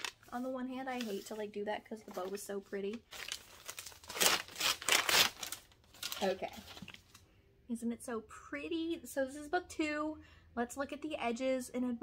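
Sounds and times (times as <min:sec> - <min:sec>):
tissue paper tearing and crumpling: 0:00.0 - 0:01.4, 0:02.1 - 0:07.0.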